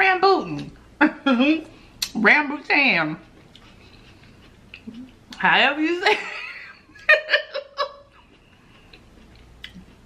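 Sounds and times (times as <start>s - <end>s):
woman giggling: 6.1s - 8.2s.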